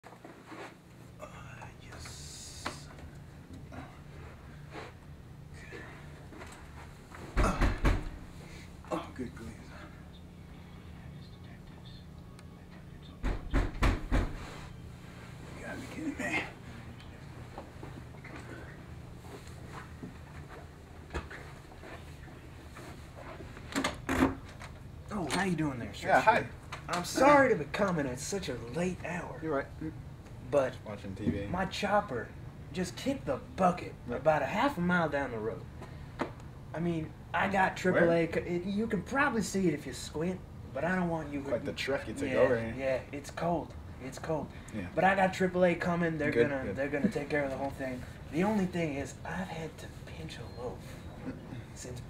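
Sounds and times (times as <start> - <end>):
low room hum: 0.0 - 52.0
faint footsteps: 16.8 - 23.7.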